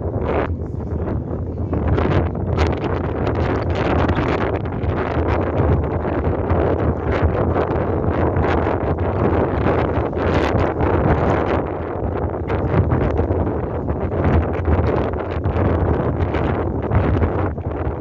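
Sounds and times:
ferry engine low hum: 0.0 - 18.0
wind buffeting microphone: 0.0 - 18.0.

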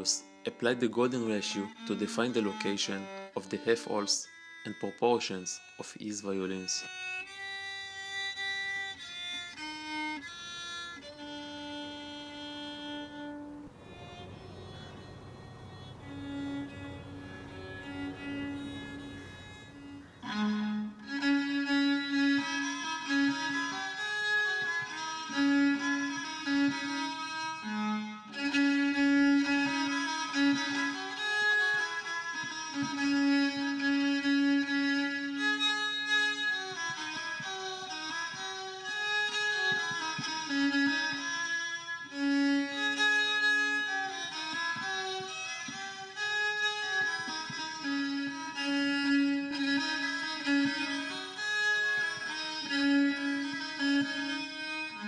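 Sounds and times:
solo violin bowed melody: 0.0 - 55.0.

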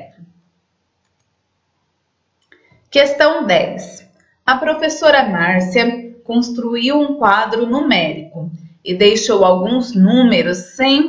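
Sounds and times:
very faint clicks: 1.0 - 1.4
woman speaking: 3.0 - 11.0.

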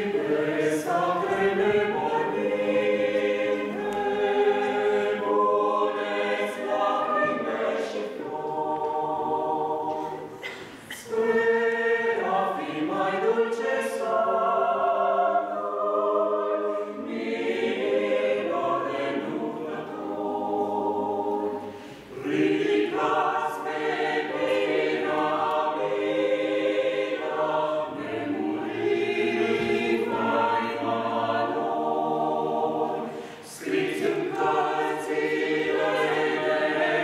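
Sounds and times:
mixed choir singing a cappella: 0.0 - 37.0.

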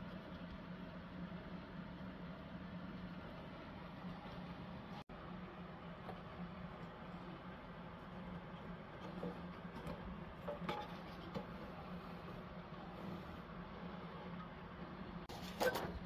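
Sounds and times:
low room hum with hiss: 0.0 - 16.0.

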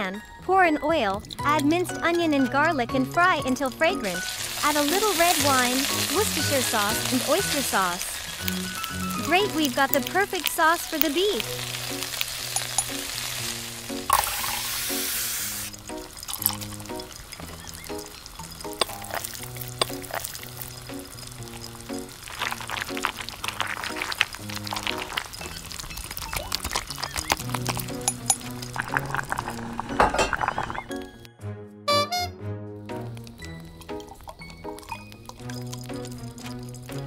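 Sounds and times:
background music: 0.0 - 37.0
sauce poured into frying wok: 4.1 - 31.1, 32.9 - 37.0
spoon scraping against wok: 16.4 - 21.4.

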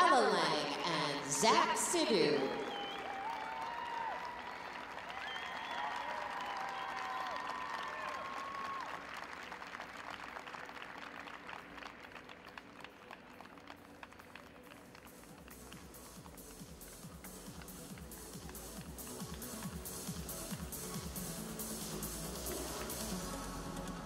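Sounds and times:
audience applauding: 0.8 - 24.0.

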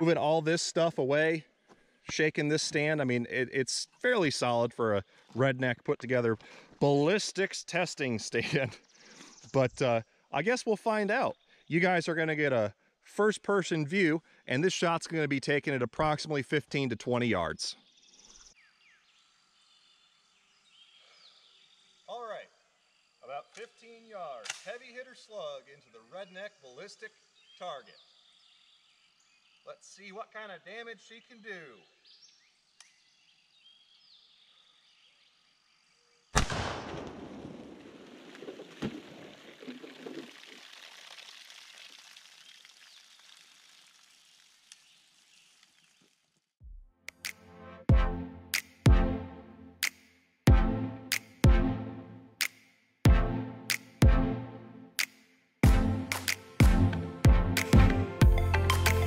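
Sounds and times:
faint bird chirps: 17.7 - 24.0
shotgun firing: 36.4 - 39.2
water splashing and pouring: 37.7 - 46.3.

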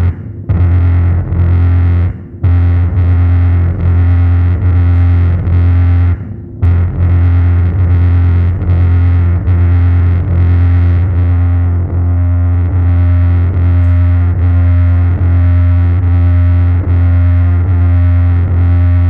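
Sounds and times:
distorted bass drone: 0.0 - 19.0.

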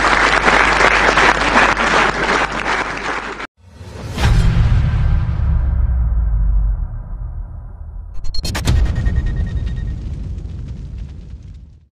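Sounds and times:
low rumbling cinematic boom: 3.6 - 11.9.

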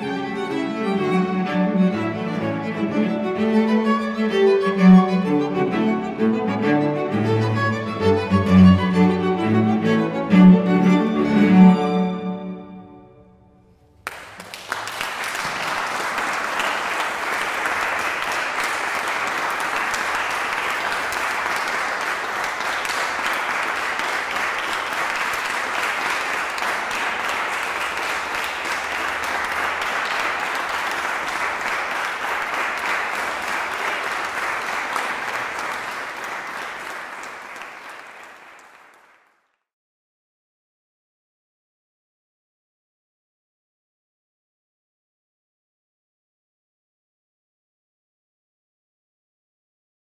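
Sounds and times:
audience applauding: 14.0 - 39.6.

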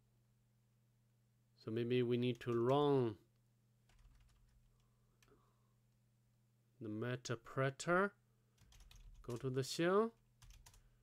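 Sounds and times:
computer keyboard typing: 2.3 - 2.8, 3.9 - 5.3, 8.6 - 9.6, 10.4 - 10.9.

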